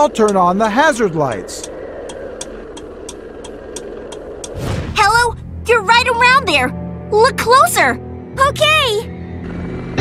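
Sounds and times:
hazard-light flasher ticking: 0:00.0 - 0:04.6
steady low hum: 0:00.0 - 0:08.4.

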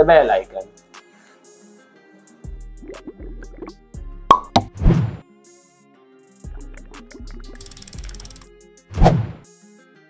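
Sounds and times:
pop sound effects: 0:02.8 - 0:05.2, 0:09.0 - 0:09.4
short whoosh: 0:04.8 - 0:05.2, 0:08.9 - 0:09.4.

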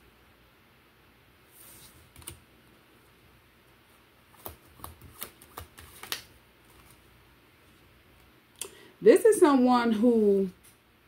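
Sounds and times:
cards tapping together: 0:04.3 - 0:07.0.

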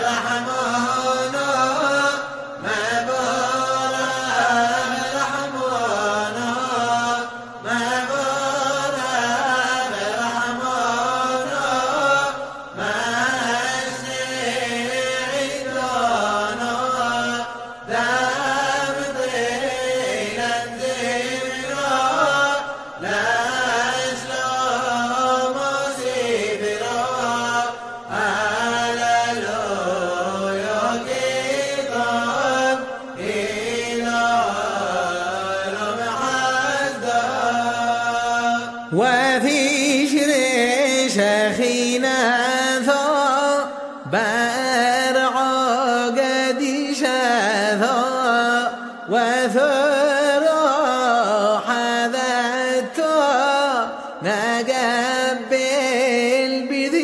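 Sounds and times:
man chanting unaccompanied: 0:00.0 - 0:57.0.

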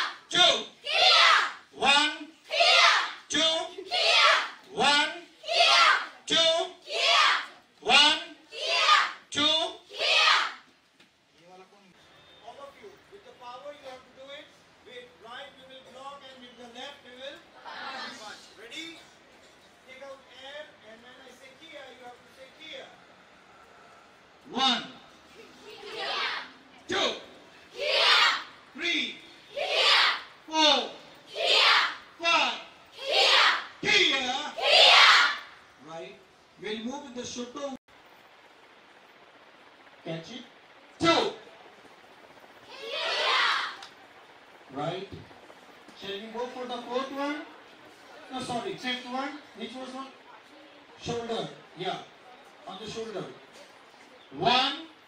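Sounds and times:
women shouting together: 0:00.8 - 0:01.6, 0:02.5 - 0:03.2, 0:03.8 - 0:04.6, 0:05.4 - 0:06.2, 0:06.8 - 0:07.5, 0:08.5 - 0:09.2, 0:09.9 - 0:10.6, 0:27.8 - 0:28.5, 0:29.5 - 0:30.3, 0:31.3 - 0:32.0, 0:33.0 - 0:33.7, 0:34.6 - 0:35.5, 0:42.7 - 0:43.8.

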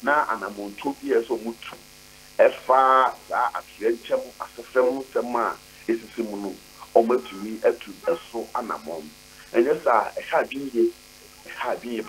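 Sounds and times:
man talking over telephone: 0:00.0 - 0:01.8, 0:02.4 - 0:12.0.

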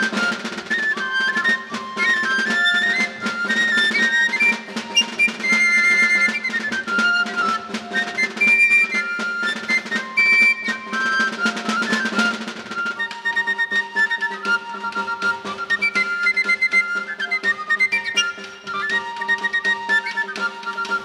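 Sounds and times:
steady drum beat: 0:00.0 - 0:13.3
high pipes playing melody: 0:00.0 - 0:21.0.

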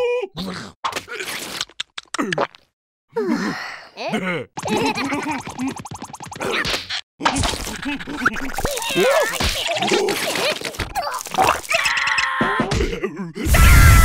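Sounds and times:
cartoon characters laughing: 0:04.6 - 0:12.8.

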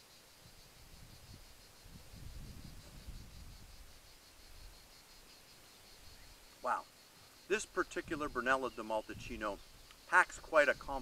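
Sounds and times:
insects chirping: 0:00.0 - 0:11.0.

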